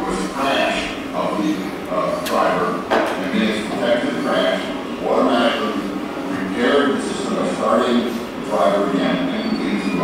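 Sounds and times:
man talking over loudspeakers: 0.0 - 10.0.

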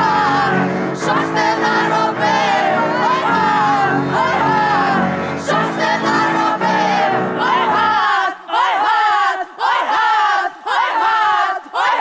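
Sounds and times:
women singing: 0.0 - 12.0.

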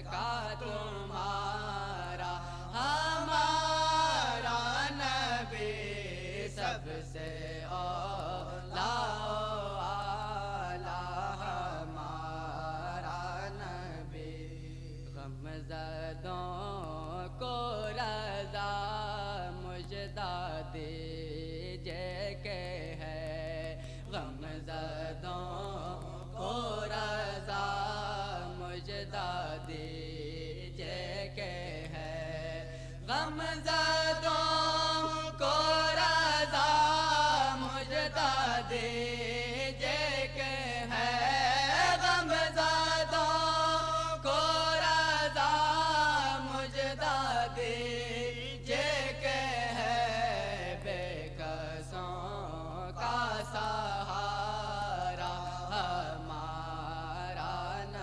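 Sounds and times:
man chanting devotional song: 0.0 - 58.0.

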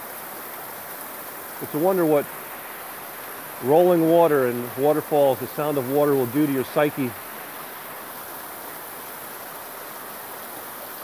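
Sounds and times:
water splashing over stone waterfall: 0.0 - 11.0.

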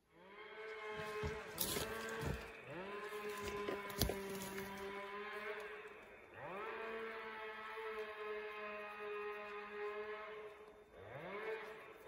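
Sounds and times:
engine running: 0.0 - 12.0.

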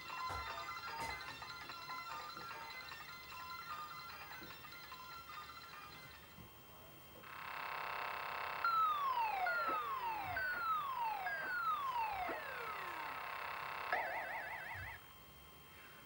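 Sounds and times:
steady electronic buzzing tone: 7.2 - 15.8
descending electronic whistles: 7.6 - 15.0
fast warbling trill: 8.2 - 15.0.

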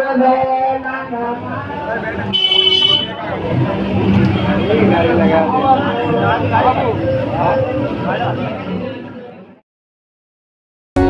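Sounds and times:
people chattering: 0.0 - 9.6
vehicle horn toot: 2.3 - 3.3.

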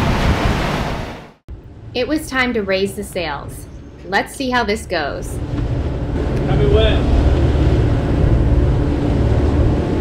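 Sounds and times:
rushing sea water: 0.0 - 1.4, 5.4 - 10.0
wind on microphone: 5.3 - 10.0.

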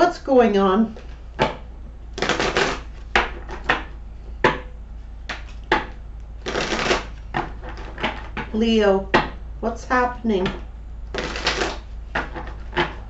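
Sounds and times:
cards being shuffled: 2.2 - 3.9, 5.3 - 8.5, 11.1 - 13.0.

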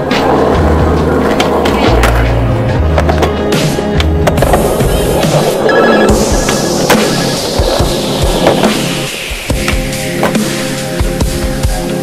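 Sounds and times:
skateboard wheels rolling on concrete: 0.0 - 12.0.

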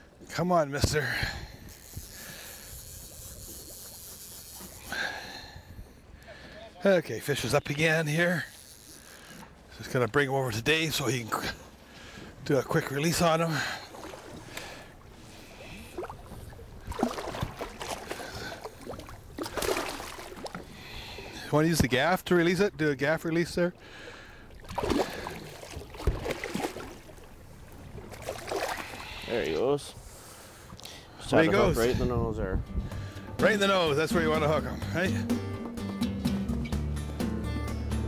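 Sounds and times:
wind and water rushing: 10.7 - 34.3.

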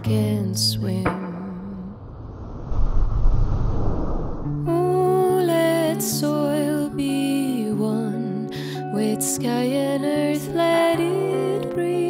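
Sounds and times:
low rumbling noise: 1.4 - 4.7.

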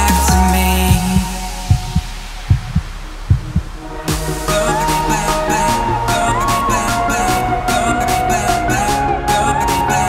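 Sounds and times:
electronic kick drum thumps: 0.0 - 4.6.

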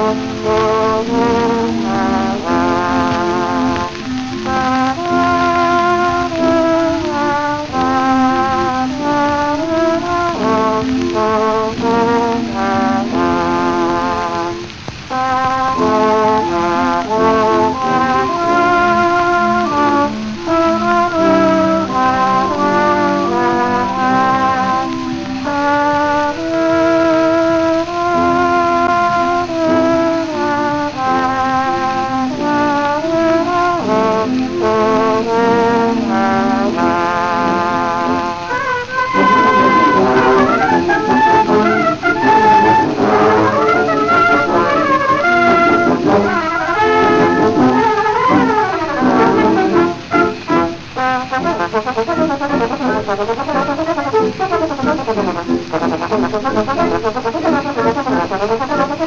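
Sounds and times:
brass band accompaniment: 0.0 - 59.0
record surface hiss: 0.0 - 59.0
solo trombone melody: 0.0 - 59.0.

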